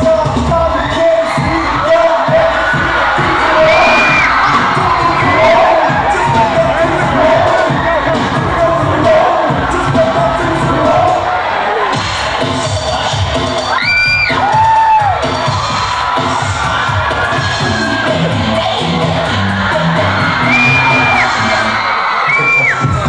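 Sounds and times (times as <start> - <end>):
crowd cheering and shouting: 0.0 - 23.0
dance music over sound system: 0.0 - 23.0
high whoops: 13.7 - 15.2.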